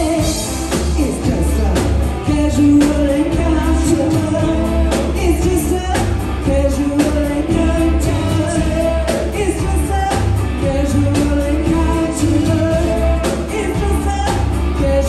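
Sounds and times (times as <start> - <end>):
bass: 0.0 - 15.0
drum kit beat: 0.0 - 15.0
electric guitar: 0.0 - 15.0
keyboards: 0.0 - 15.0.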